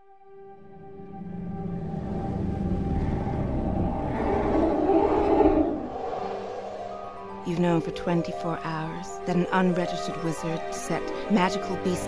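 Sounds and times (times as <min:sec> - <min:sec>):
ambient trailer score: 0:00.0 - 0:12.0
low noisy sound design swell: 0:00.4 - 0:07.5.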